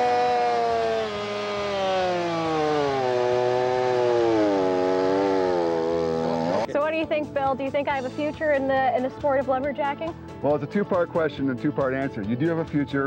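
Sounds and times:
chainsaw cutting into log: 0.0 - 6.7.

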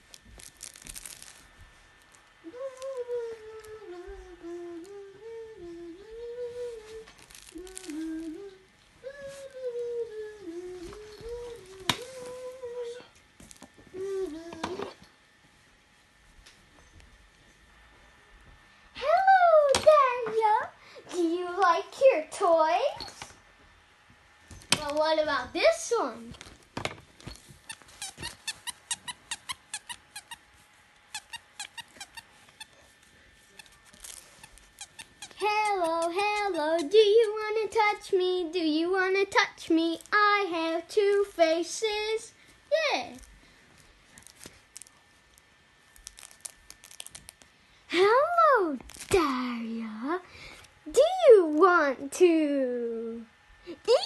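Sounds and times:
person humming a slow tune: 2.4 - 13.2, 13.8 - 15.1
plush toy squeaker squeaking: 27.6 - 30.4, 31.1 - 32.3, 33.6 - 37.4.

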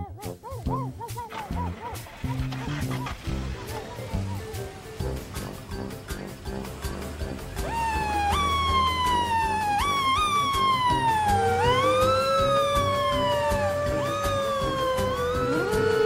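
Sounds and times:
background music: 0.0 - 16.0
fire engine siren wailing: 7.6 - 16.0
lower siren slow rise and fall: 7.6 - 16.0.

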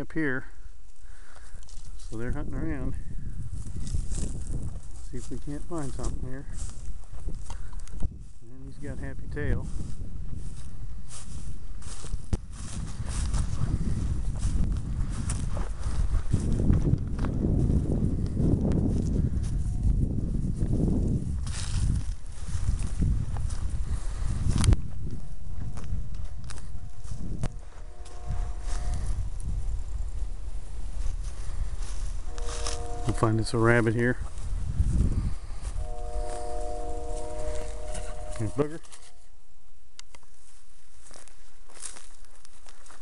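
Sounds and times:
footsteps through dry grass: 0.0 - 43.0
twigs crackling: 0.8 - 2.3, 3.6 - 8.0, 25.8 - 33.5, 40.0 - 43.0
rumbling microphone noise: 1.2 - 39.4.

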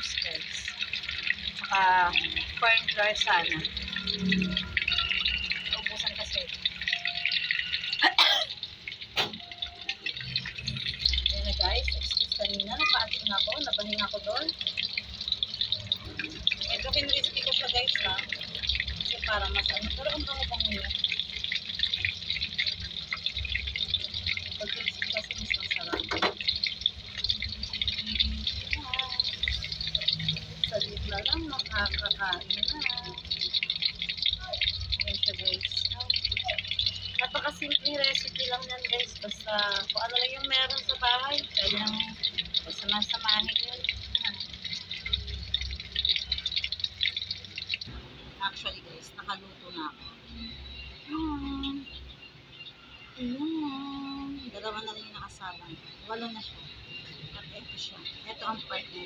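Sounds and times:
shrimp deep-frying sizzle: 0.0 - 53.2, 54.2 - 59.0.

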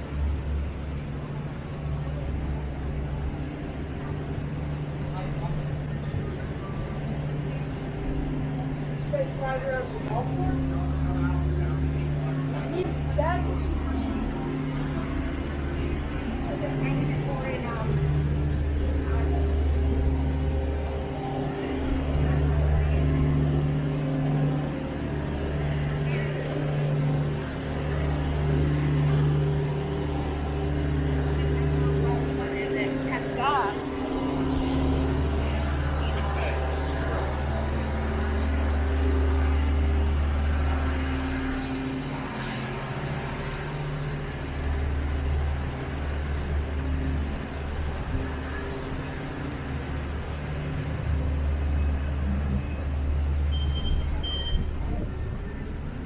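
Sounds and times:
hum of vehicle engines: 0.0 - 56.0
people's voices: 0.0 - 56.0.

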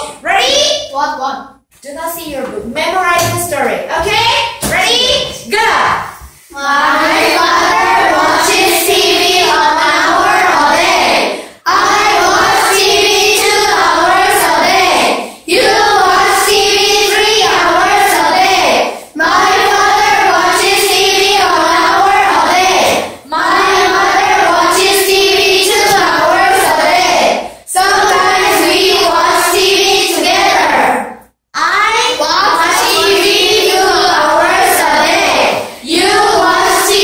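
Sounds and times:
children chanting in unison: 5.7 - 37.0.

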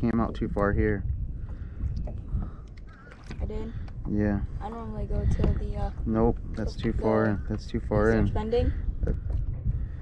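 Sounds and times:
water lapping against hulls: 0.0 - 10.0
wind rumble on microphone: 0.0 - 10.0.

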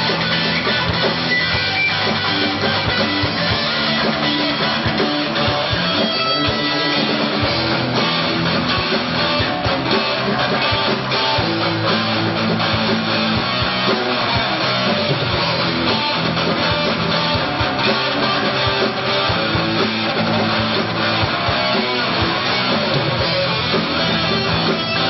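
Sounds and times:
drum kit beat: 0.0 - 25.0
electric bass guitar: 0.0 - 25.0
electric guitar: 0.0 - 25.0.

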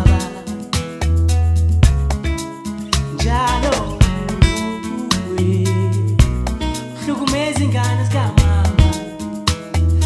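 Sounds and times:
pop music with deep bass: 0.0 - 10.0.

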